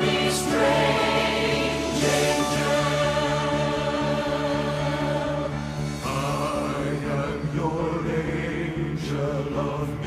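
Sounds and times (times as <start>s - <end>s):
choir singing held chord: 0.0s - 10.0s.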